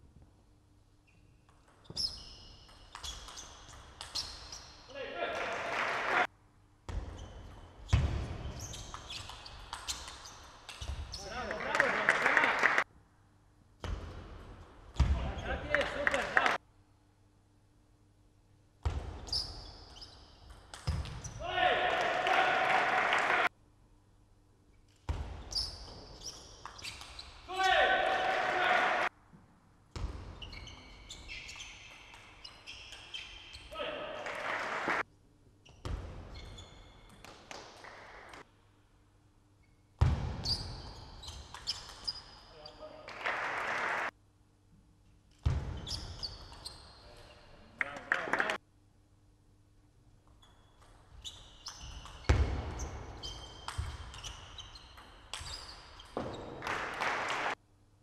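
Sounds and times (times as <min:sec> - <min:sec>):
loud shouting: 0:21.4 - 0:23.5, 0:27.5 - 0:29.1.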